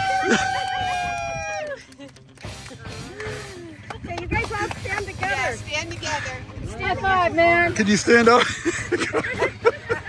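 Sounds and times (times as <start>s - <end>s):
person cheering woo: 0.0s - 1.9s.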